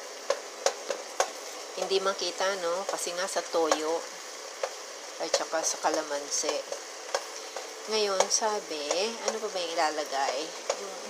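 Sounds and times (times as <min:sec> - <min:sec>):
food sizzling in hot oil: 0:00.0 - 0:11.0
wooden spatula knocking on pan: 0:00.2 - 0:02.0, 0:04.6 - 0:10.8.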